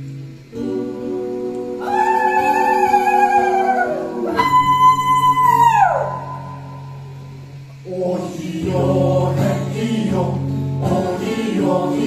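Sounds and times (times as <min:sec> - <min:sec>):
acoustic guitar: 0:00.0 - 0:12.0
group singing: 0:00.5 - 0:04.6, 0:07.8 - 0:12.0.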